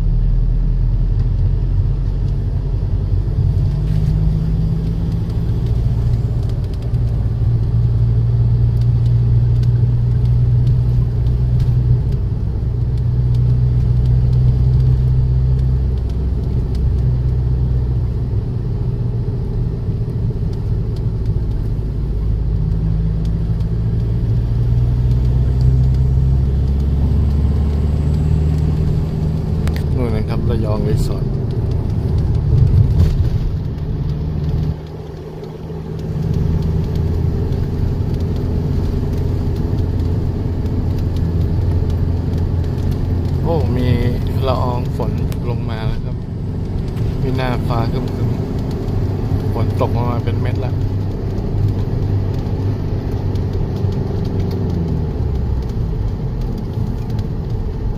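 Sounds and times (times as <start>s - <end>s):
engine and road rumble in car: 0.0s - 57.9s.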